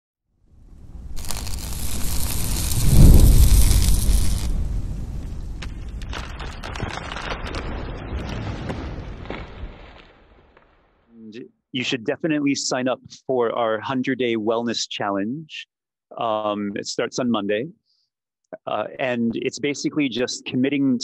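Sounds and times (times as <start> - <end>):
boom: 0.8 - 11.1
scattered crackles: 0.9 - 11.2.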